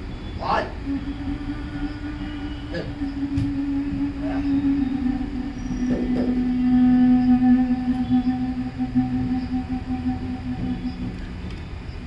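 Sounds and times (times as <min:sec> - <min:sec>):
low drone music note: 0:00.0 - 0:12.0.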